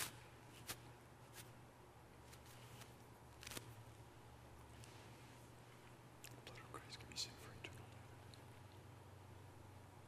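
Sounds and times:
low steady hum: 0:00.0 - 0:10.0
soft hisses: 0:02.2 - 0:08.7.

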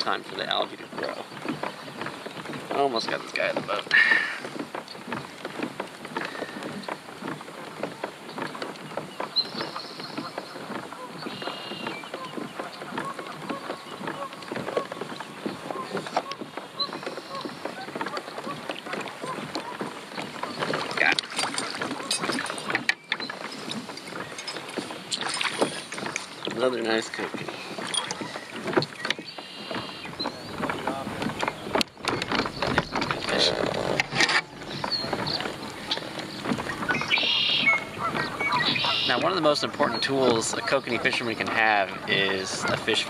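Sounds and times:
fishing gear clicking and knocking: 0:00.0 - 0:43.0
water splashing around kayak: 0:00.0 - 0:43.0.

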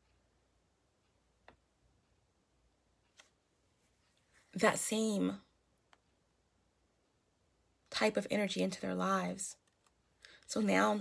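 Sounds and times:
woman's voice: 0:04.6 - 0:05.5, 0:07.9 - 0:09.6, 0:10.5 - 0:11.0.

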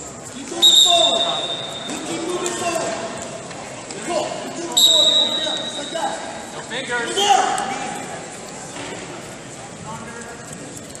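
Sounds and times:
voices in a hall: 0:00.0 - 0:11.0
referee's whistle: 0:00.5 - 0:02.1, 0:04.7 - 0:06.0.

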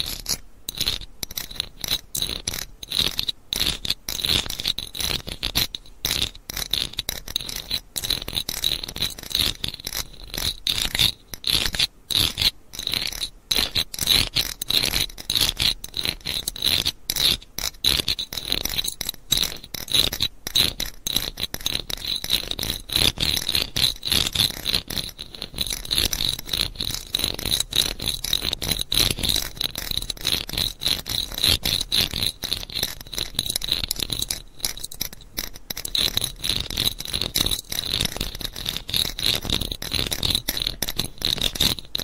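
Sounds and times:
scratching: 0:00.0 - 0:42.0.

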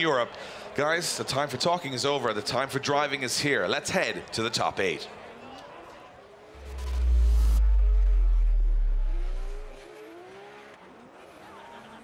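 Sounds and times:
car engines revving: 0:06.2 - 0:12.0
rush of noise: 0:06.5 - 0:09.9
deep low boom: 0:06.6 - 0:09.8.

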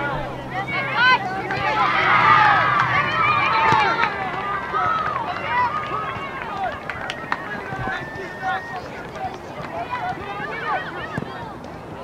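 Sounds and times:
children shouting and calling: 0:00.0 - 0:12.0.

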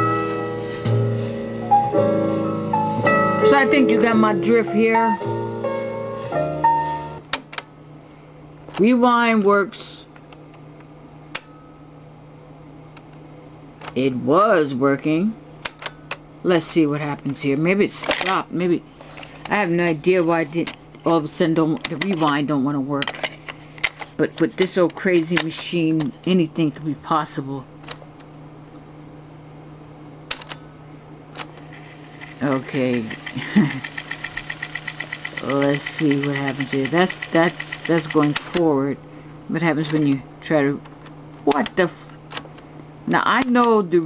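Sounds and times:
cassette recorder low hum: 0:06.4 - 0:44.0
cassette recorder rewind hum: 0:29.7 - 0:43.8.

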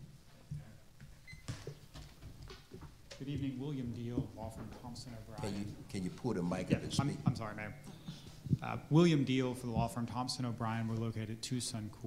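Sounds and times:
microphone handling knocks and rustles: 0:06.5 - 0:08.8.

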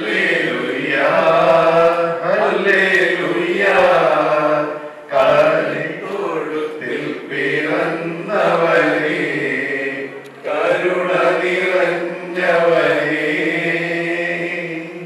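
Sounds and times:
man singing into microphone: 0:00.0 - 0:15.0.

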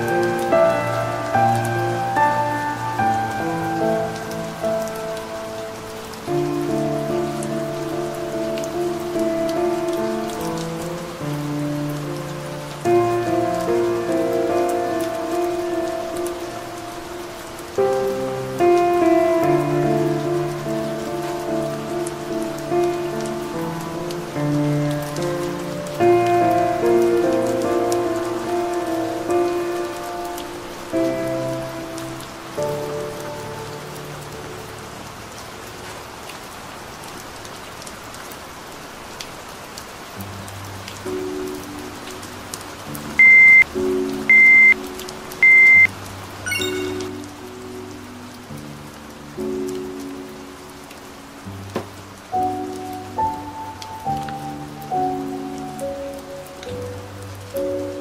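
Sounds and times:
calm piano chords: 0:00.0 - 0:37.9, 0:38.8 - 0:58.0
soft rain: 0:00.0 - 0:58.0.

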